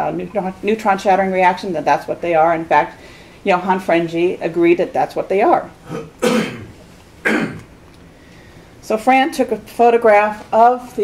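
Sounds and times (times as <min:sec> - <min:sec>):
woman coughing: 0:05.9 - 0:06.7, 0:07.3 - 0:07.6.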